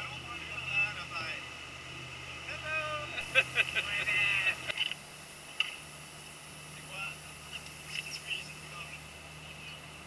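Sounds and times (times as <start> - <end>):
boat engine humming: 0.0 - 10.0.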